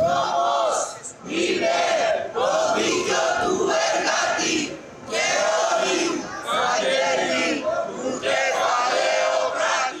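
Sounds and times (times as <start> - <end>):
crowd chanting: 0.0 - 10.0.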